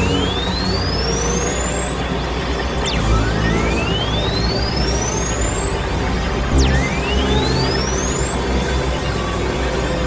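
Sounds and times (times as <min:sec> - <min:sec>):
low droning tones: 0:00.0 - 0:10.0.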